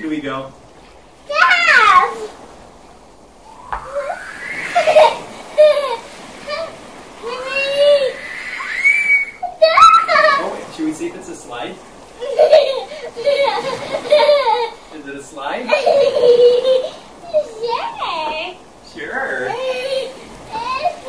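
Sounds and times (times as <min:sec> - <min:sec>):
young child squealing playfully: 0:01.3 - 0:02.3, 0:03.4 - 0:10.5, 0:19.5 - 0:21.0.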